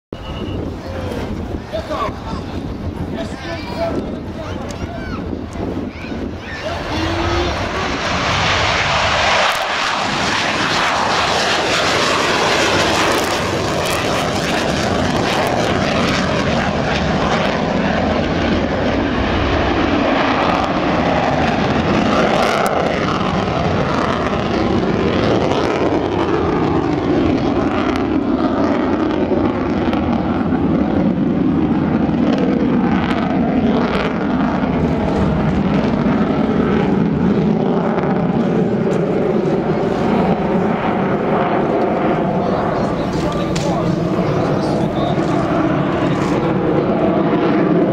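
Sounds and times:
jet engine roar: 0.1s - 47.9s.

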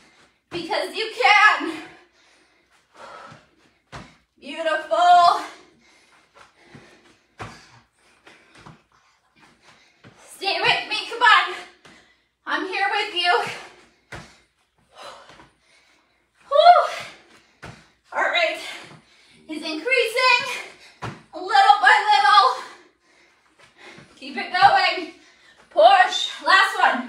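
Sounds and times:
woman speaking: 0.6s - 1.8s, 4.4s - 5.5s, 10.4s - 11.6s, 12.5s - 13.6s, 18.2s - 18.8s, 19.5s - 20.6s, 21.4s - 22.7s, 24.2s - 25.1s, 25.8s - 27.0s
feet thumping on exercise mat: 3.0s - 4.2s, 6.2s - 10.8s, 13.4s - 15.6s, 16.7s - 18.0s, 20.2s - 21.4s.

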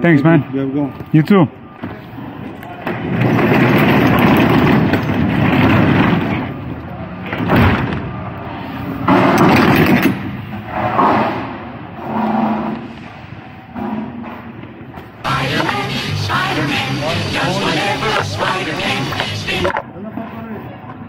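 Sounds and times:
door rattling and clattering: 2.9s - 6.6s.

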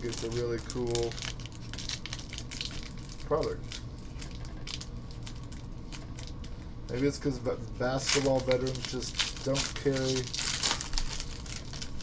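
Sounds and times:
foil wrapper crinkling: 0.0s - 12.0s.

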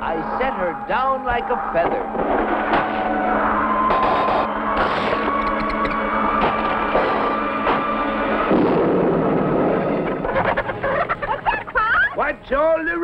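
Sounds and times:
orchestral music: 1.5s - 13.0s
chickens squawking: 10.2s - 12.2s.

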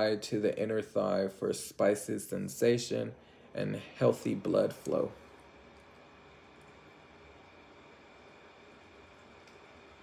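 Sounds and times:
faint high hum: 0.0s - 10.0s
faint steady hiss: 0.0s - 10.0s.

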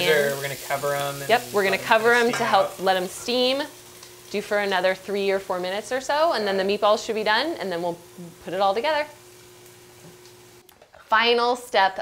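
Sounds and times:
faint sizzle from frying pan: 0.0s - 12.0s.

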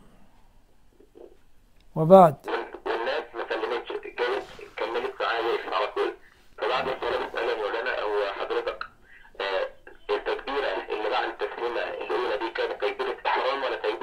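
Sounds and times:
person talking over telephone: 2.0s - 14.0s.

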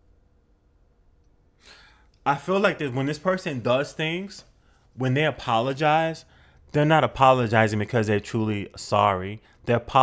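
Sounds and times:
short breath: 1.6s - 2.2s, 6.3s - 6.7s.

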